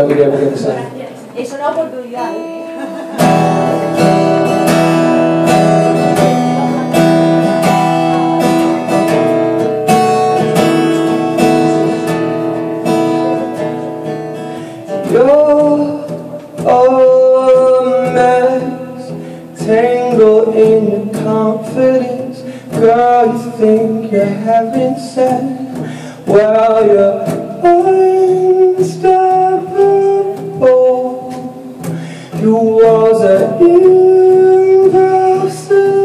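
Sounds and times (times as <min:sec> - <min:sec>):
acoustic guitar strumming: 0:00.0 - 0:36.0
man singing: 0:10.3 - 0:36.0.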